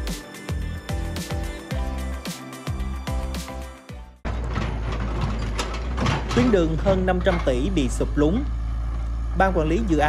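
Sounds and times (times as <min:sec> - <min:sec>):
outdoor low rumble: 0:04.2 - 0:10.0.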